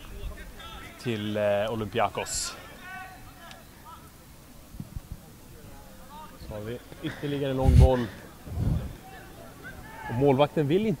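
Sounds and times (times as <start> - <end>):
short low thumps: 7.6 - 9.0
low outdoor rumble: 7.6 - 9.2.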